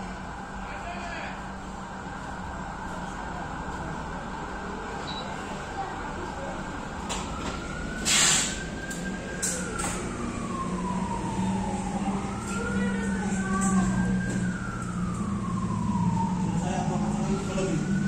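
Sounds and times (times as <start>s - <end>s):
siren wailing: 6.4s - 18.0s.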